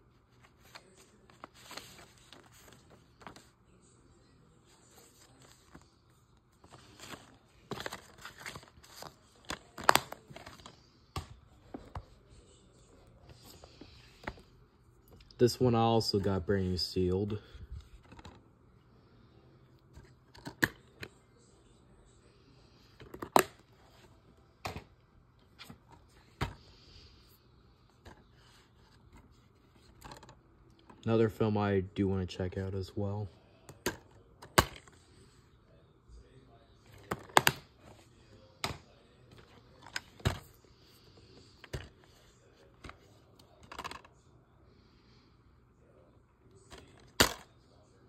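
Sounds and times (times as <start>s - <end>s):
plastic cases clacking: 6.7s - 12.0s.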